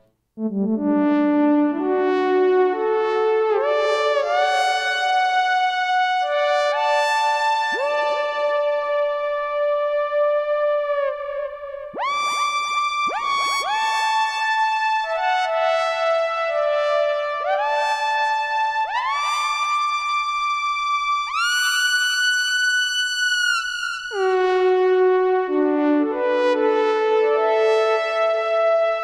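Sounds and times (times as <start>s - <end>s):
brassy synthesizer chords: 0.4s - 12.4s, 24.1s - 29.0s.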